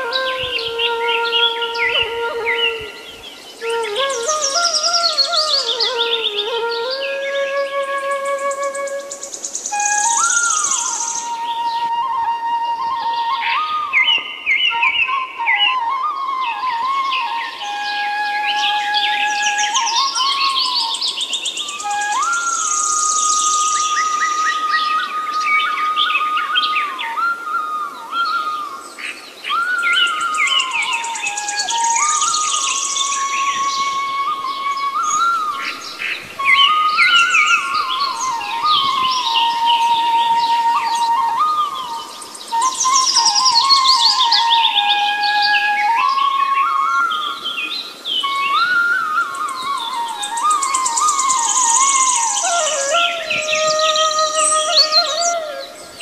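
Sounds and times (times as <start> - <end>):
bamboo flute melody: 0.0 - 56.0
birds chirping and trilling: 0.0 - 56.0.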